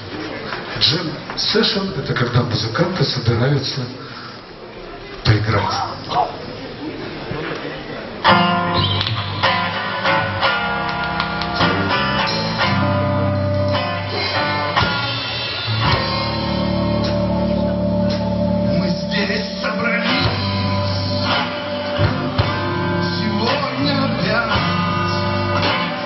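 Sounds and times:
acoustic guitar strumming: 8.2s - 26.0s
keyboard chords: 8.2s - 26.0s.

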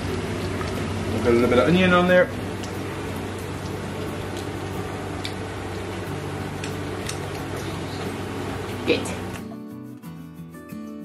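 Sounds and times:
oil sizzling in a frying pan: 0.0s - 9.4s.

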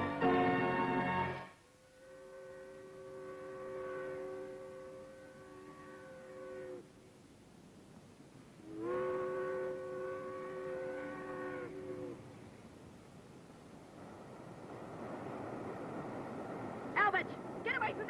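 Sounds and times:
steam whistle chord blasts: 0.0s - 6.8s, 8.7s - 12.0s.

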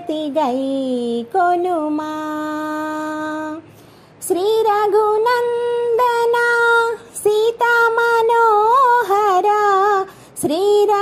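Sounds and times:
solo voice singing devotional song: 0.0s - 11.0s.

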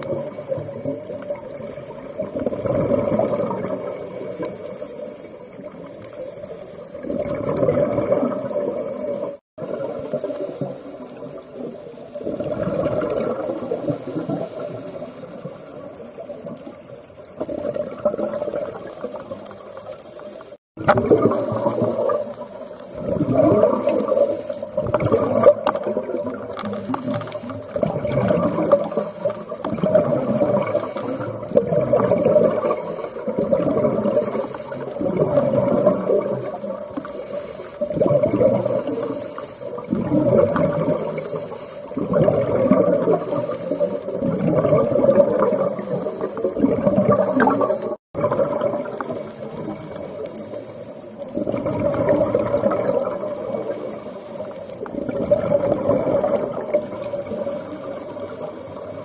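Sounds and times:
bubbles gurgling: 0.0s - 59.0s
diver breathing underwater: 20.8s - 50.8s.

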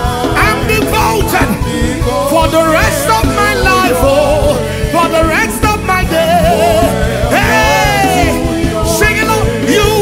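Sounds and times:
band with keyboard and beat: 0.0s - 10.0s
person singing with vibrato: 0.0s - 10.0s.

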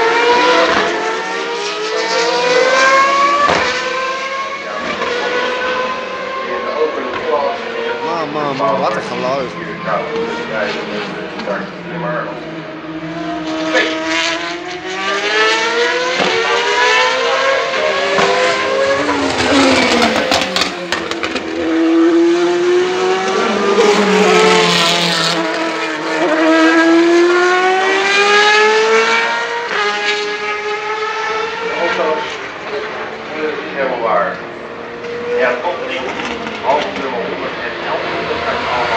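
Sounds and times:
racing motorcycle engines: 0.0s - 38.9s.

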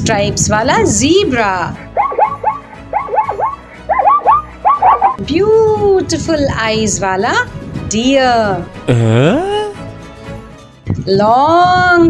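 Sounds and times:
light background music: 0.0s - 12.0s
zebra barking yelps: 1.8s - 5.2s.

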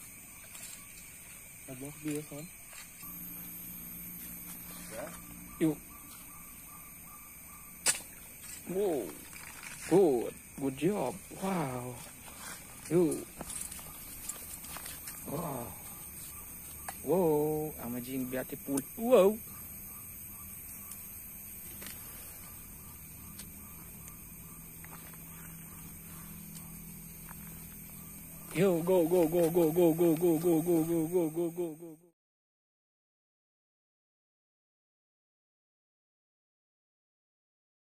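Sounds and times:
low hum and hiss: 1.7s - 13.6s.

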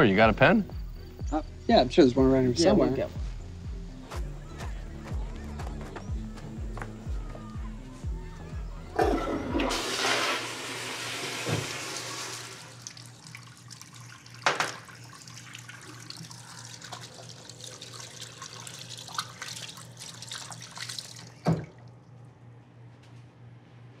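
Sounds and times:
steady low hum: 0.0s - 9.6s
running water with splashes: 9.0s - 22.0s.

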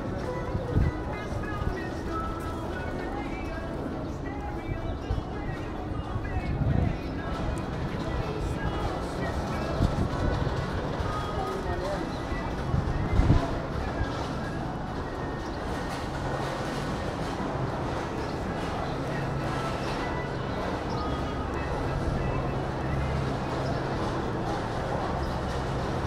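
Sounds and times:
background music: 0.0s - 26.0s
murmur of voices: 0.0s - 26.0s.

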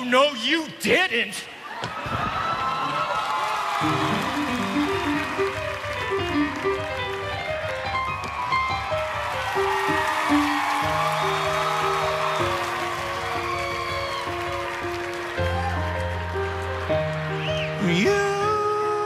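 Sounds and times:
piano playing: 3.8s - 19.0s.

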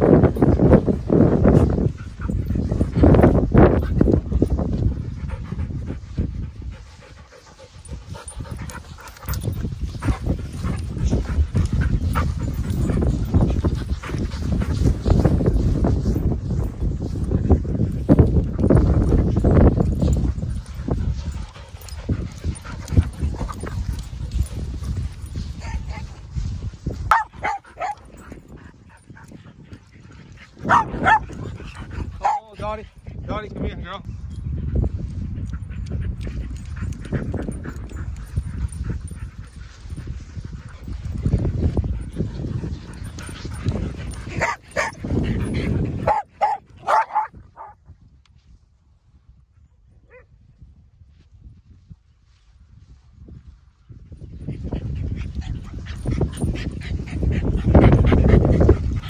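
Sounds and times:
dogs playing rough: 0.0s - 33.2s, 34.5s - 47.8s, 54.4s - 59.0s.

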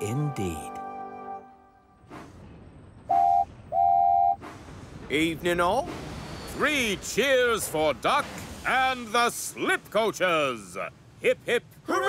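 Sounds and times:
held music chord: 0.0s - 2.0s
steam locomotive whistle: 3.1s - 4.4s
steam hissing: 4.4s - 10.4s.

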